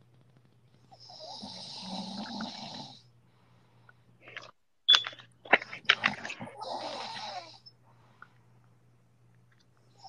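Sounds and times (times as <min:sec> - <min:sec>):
person snoring: 0:01.0 - 0:03.0, 0:06.5 - 0:07.6.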